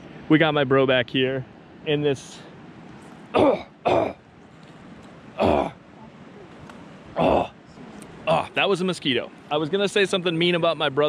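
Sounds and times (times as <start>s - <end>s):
man coughing: 3.3s - 4.2s.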